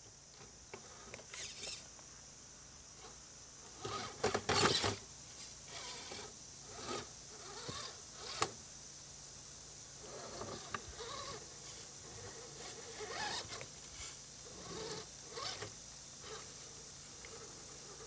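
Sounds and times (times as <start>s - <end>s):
electric motor whirring: 0.8s - 1.9s, 3.7s - 5.0s, 5.7s - 8.6s, 10.0s - 18.0s.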